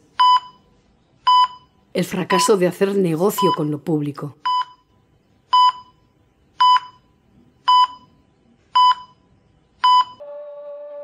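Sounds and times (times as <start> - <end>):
heart monitor beeping: 0.2 - 0.7, 1.3 - 2.5, 4.4 - 8.2, 8.8 - 10.3.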